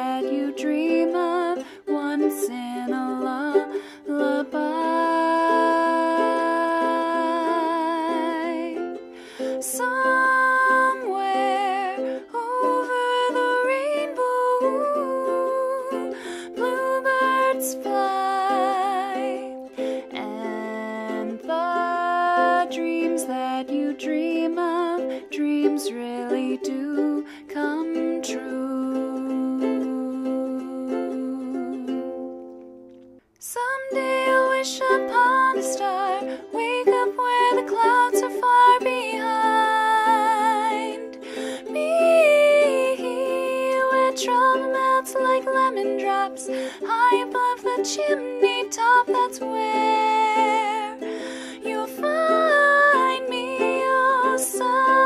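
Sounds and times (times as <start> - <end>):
strummed ukulele: 0.0 - 55.0
person singing wavering notes: 33.6 - 55.0.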